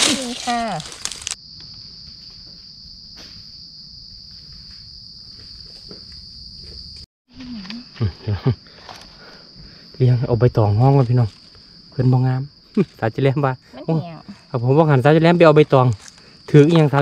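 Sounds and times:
insects droning: 0.0s - 17.0s
woman laughing: 8.0s - 8.6s.

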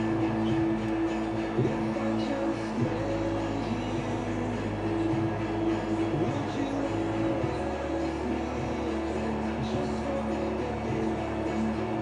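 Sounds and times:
music on car radio: 0.0s - 12.0s.

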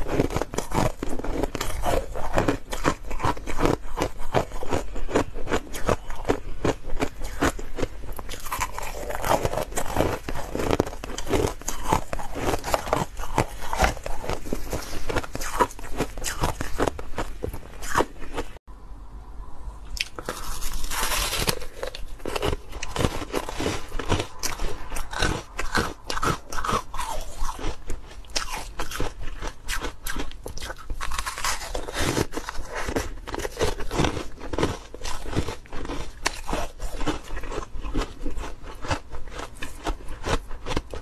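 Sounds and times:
chewing ice crunches: 0.0s - 18.6s, 20.0s - 41.0s.

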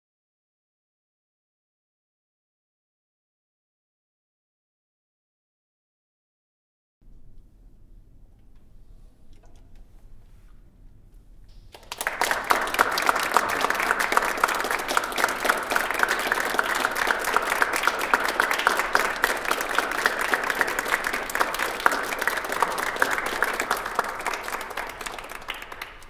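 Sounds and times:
crowd applauding: 11.7s - 26.0s.

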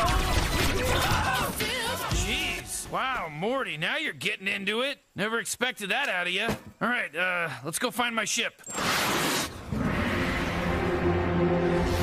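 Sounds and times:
background music held notes: 10.0s - 12.0s.

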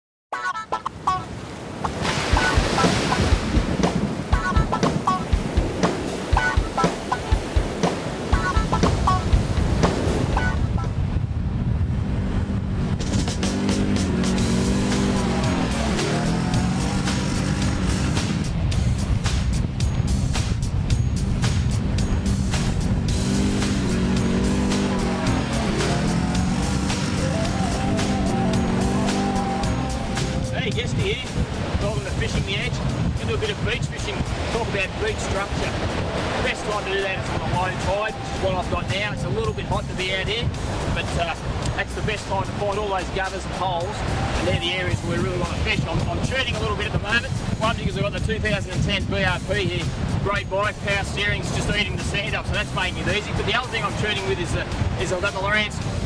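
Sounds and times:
theme music with a beat: 2.3s - 10.8s, 13.0s - 42.6s
atv engine revving: 11.8s - 18.7s, 21.3s - 30.6s.

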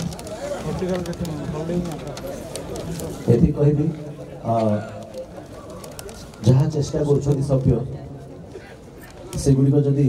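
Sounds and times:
low background noise: 0.0s - 10.0s
man speaking over pa system: 3.3s - 5.1s, 6.4s - 8.2s, 9.3s - 10.0s.

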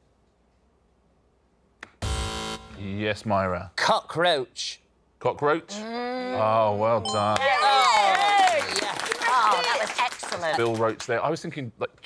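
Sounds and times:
quiz show buzzer: 2.0s - 2.9s.

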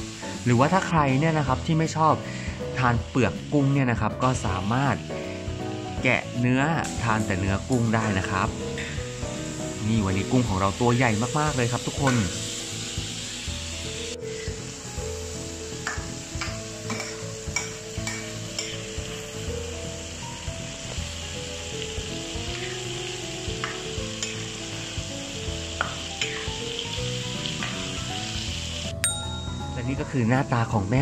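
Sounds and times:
prawns sizzling in hot oil: 0.0s - 31.0s.

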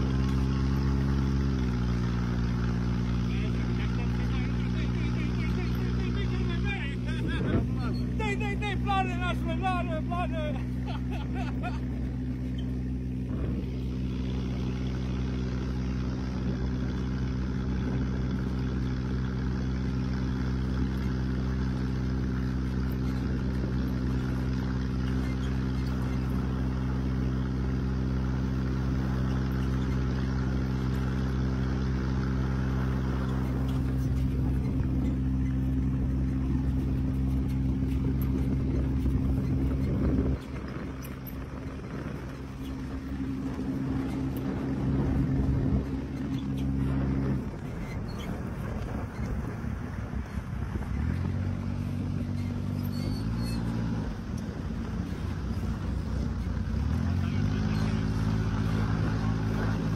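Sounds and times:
dune buggy engine running: 0.0s - 59.9s.

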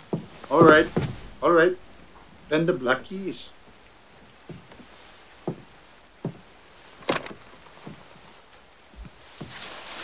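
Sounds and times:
faint room ambience hiss: 0.0s - 10.0s
soft dull taps: 3.6s - 8.1s.

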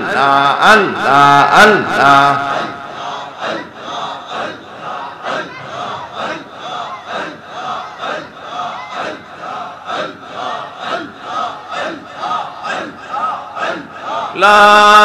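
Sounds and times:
congregation chanting: 0.0s - 15.0s.

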